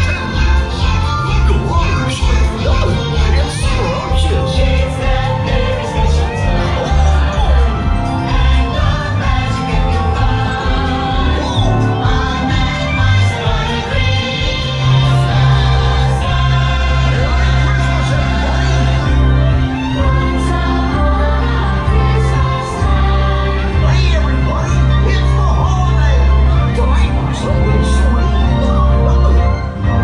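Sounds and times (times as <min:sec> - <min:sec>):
christmas music over loudspeakers: 0:00.0 - 0:30.0.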